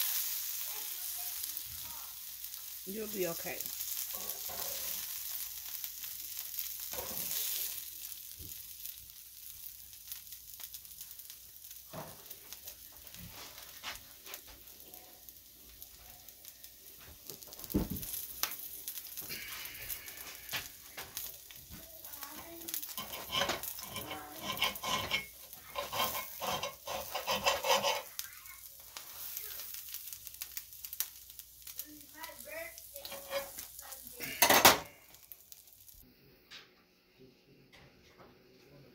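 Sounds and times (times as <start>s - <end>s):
food sizzling in a skillet: 0.0s - 36.1s
metal utensil scraping a pan: 2.9s - 5.2s, 6.8s - 7.8s, 22.6s - 28.2s, 33.0s - 34.9s.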